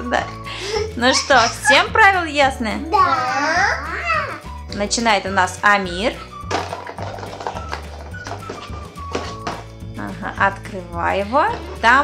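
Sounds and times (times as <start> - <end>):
background music with bass notes: 0.0 - 12.0.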